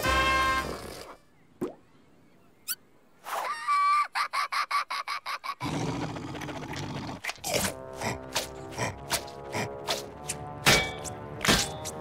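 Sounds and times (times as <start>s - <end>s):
music: 7.5s - 12.0s.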